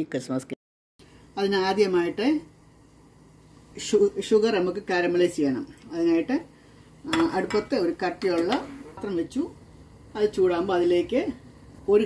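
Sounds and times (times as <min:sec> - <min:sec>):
steel saucepan clinking: 0:07.1 - 0:08.7
woman speaking: 0:10.2 - 0:12.0.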